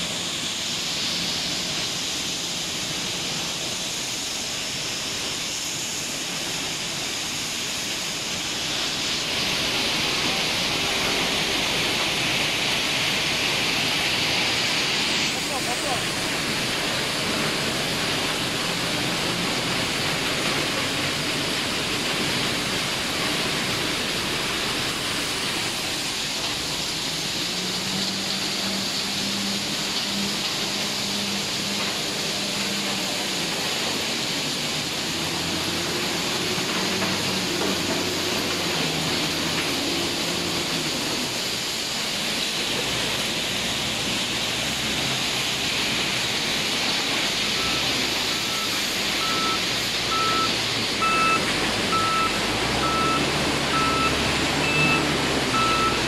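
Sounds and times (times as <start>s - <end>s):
diesel engine running: 0.0s - 56.0s
loud industrial noise: 0.0s - 56.0s.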